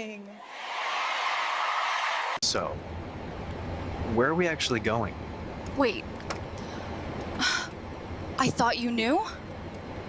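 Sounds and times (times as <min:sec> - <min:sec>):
cockpit engine drone: 0:02.4 - 0:10.0.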